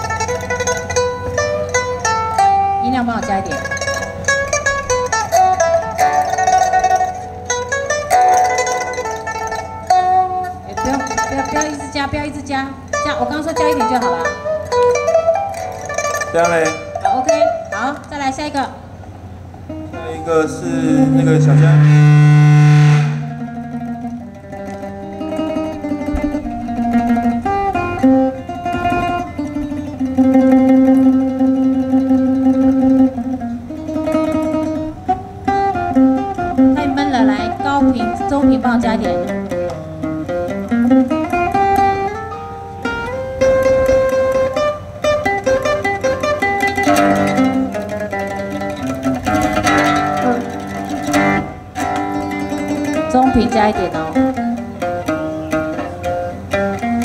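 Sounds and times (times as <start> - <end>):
plucked string instrument melody: 0.0 - 57.0.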